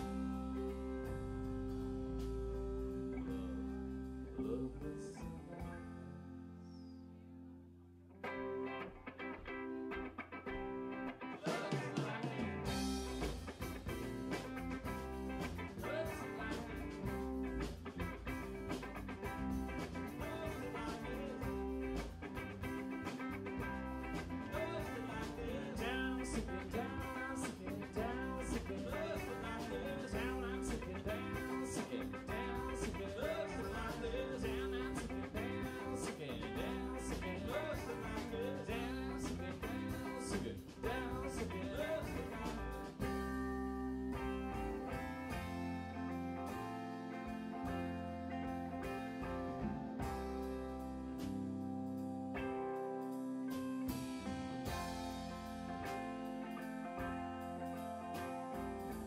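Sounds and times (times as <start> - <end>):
drum kit with cymbals: 0.0 - 3.8, 11.4 - 52.2, 53.0 - 59.0
bass guitar: 0.0 - 59.0
electric guitar bending notes: 0.0 - 59.0.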